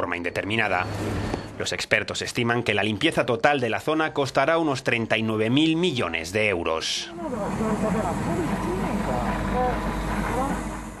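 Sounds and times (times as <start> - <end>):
indistinct voices talking: 7.1 - 10.8
low machinery rumble: 7.1 - 11.0.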